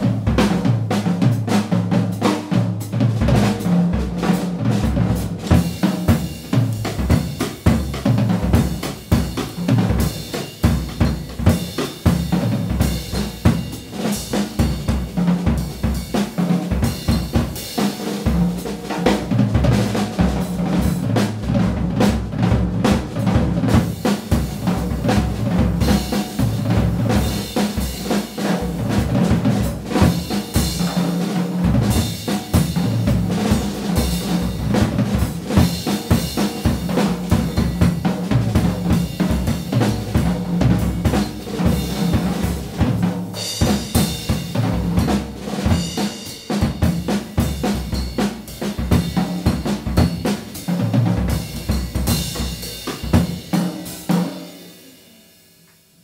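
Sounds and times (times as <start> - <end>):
jazz drum solo: 0.0 - 55.6.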